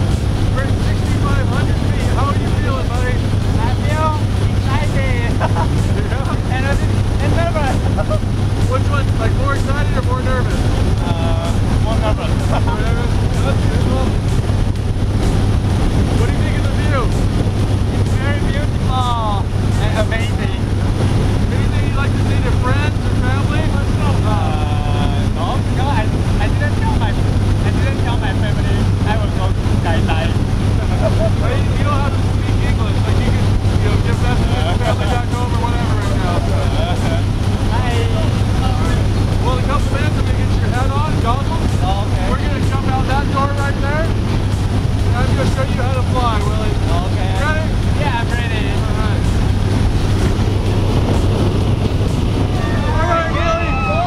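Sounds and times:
airplane engine droning: 0.0 - 54.0
muffled voices: 0.0 - 54.0.

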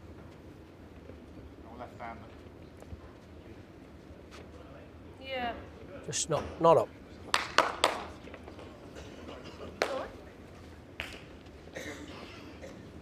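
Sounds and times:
sharp handclaps: 7.3 - 8.4, 9.8 - 10.1, 11.0 - 11.3.

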